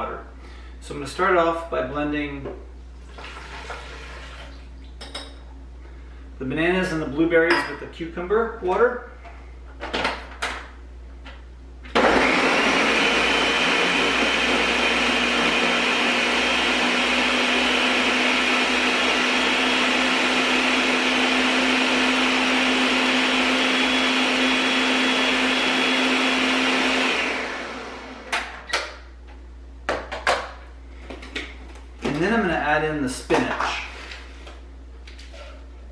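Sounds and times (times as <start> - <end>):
blender running: 11.9 - 28.5.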